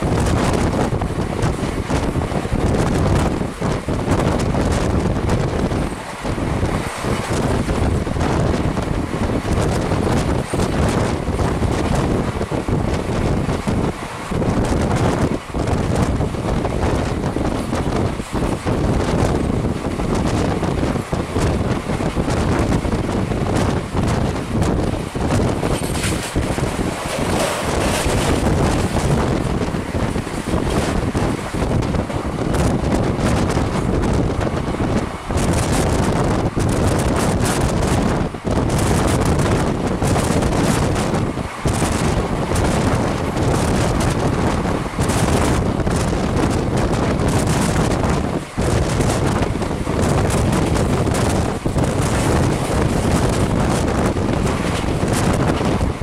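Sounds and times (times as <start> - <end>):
train rumbling on track: 0.0 - 56.0
wheels knocking and clattering: 0.0 - 56.0
wind buffeting microphone: 0.0 - 56.0.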